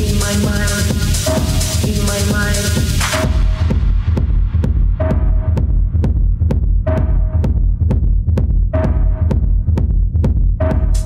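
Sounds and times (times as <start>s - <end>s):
dark techno music: 0.0s - 11.0s
throbbing bass: 0.0s - 11.0s.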